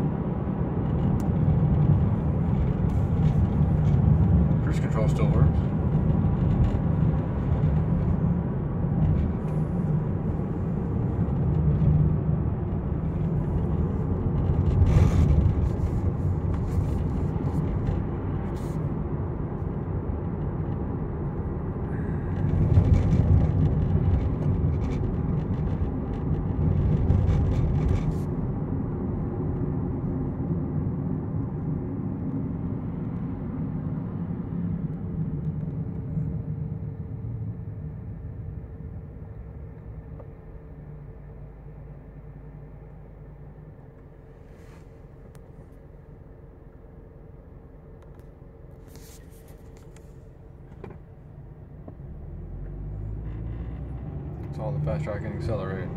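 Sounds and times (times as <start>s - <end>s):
car engine and road noise: 0.0s - 55.9s.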